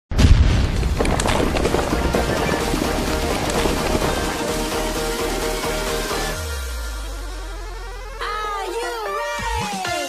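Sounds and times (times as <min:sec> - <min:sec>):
loud boom: 0:00.1 - 0:05.2
falling rock rubble clatter: 0:00.4 - 0:05.5.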